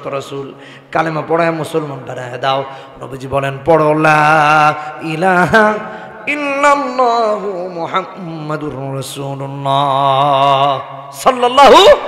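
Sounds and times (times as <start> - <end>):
man chanting amplified: 0.0 - 12.0.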